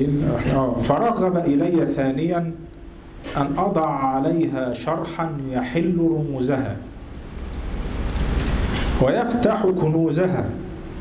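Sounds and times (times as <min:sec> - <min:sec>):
low noisy rumble: 0:00.0 - 0:11.0.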